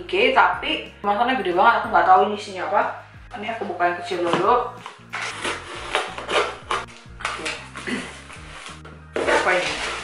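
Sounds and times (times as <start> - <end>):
packing paper rustling and crinkling: 5.1 - 10.0.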